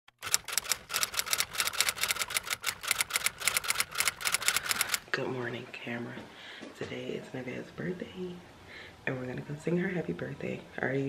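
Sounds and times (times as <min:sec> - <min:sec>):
typewriter key clicks: 0:00.2 - 0:05.0.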